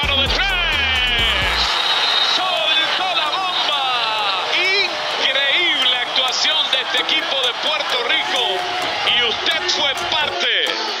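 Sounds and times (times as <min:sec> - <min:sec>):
background music: 0:00.0 - 0:11.0
excited voices: 0:00.0 - 0:11.0.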